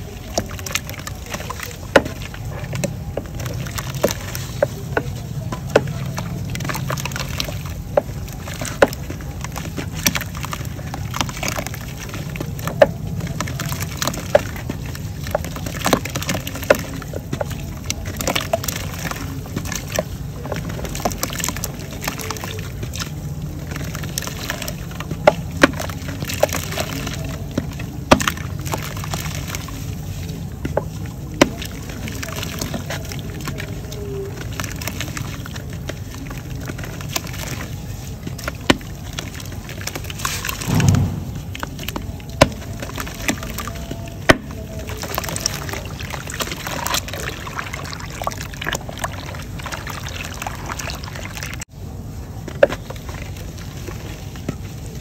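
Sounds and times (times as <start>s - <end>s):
clay chunks splashing into water: 0.0s - 51.7s
steady low rumble: 0.0s - 55.0s.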